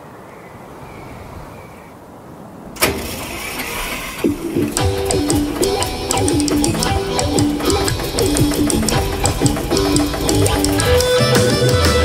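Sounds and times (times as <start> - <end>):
car starter cranking: 2.8 - 12.0.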